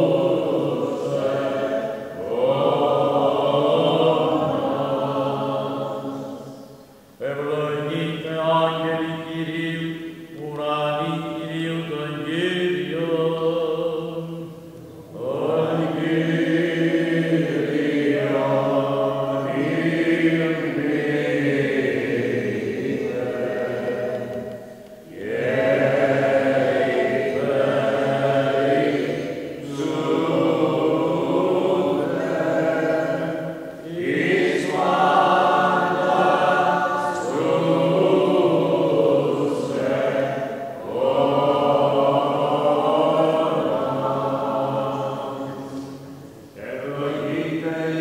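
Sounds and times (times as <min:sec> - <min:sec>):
men chanting: 0:00.0 - 0:06.5, 0:07.2 - 0:46.0, 0:46.6 - 0:48.0.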